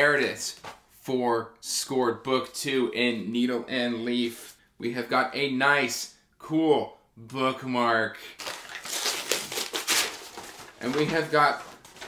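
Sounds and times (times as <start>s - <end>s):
paper wrapping crinkling: 8.4s - 12.0s.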